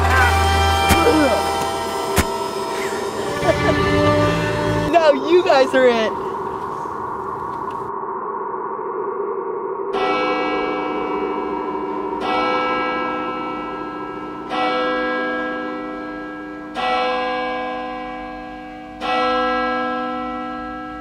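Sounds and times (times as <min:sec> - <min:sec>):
bell tolling: 0:00.0 - 0:06.5, 0:10.0 - 0:21.0.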